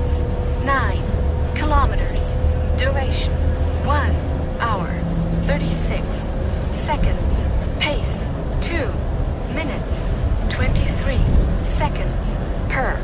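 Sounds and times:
bus rumble: 0:00.0 - 0:13.0
person talking: 0:00.0 - 0:13.0.

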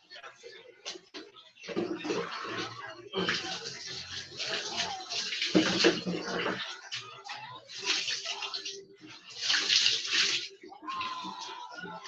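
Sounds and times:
water splashing onto floor: 0:07.7 - 0:10.5.

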